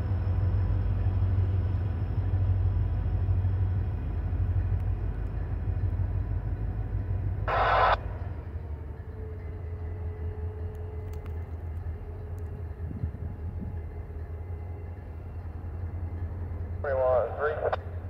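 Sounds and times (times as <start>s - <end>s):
diesel locomotive rumble: 0.0s - 18.0s.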